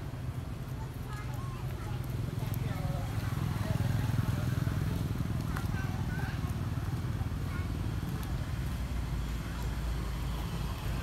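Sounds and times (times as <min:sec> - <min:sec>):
distant voices chattering: 0:00.0 - 0:11.0.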